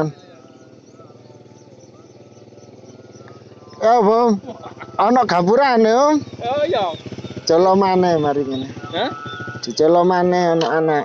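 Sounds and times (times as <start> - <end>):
small motorcycle engine idling: 0.0 - 11.0
man calling out: 3.5 - 11.0.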